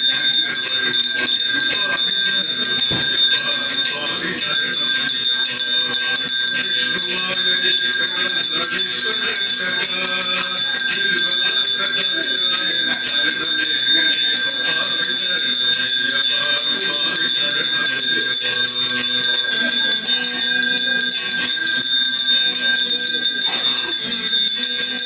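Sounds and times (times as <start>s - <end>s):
high ringing tones: 0.0s - 25.0s
jingling bells or rattle: 0.0s - 25.0s
voices: 0.0s - 25.0s.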